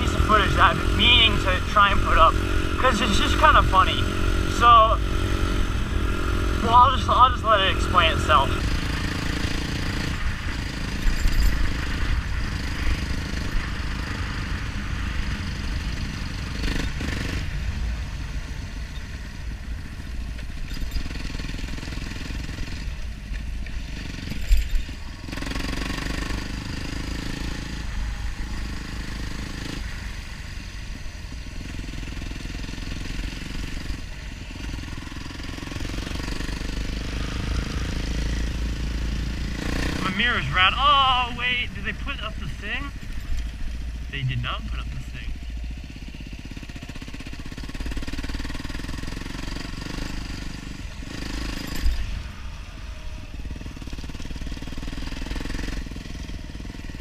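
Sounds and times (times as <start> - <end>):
dirt bike engine running: 0.0 - 57.0.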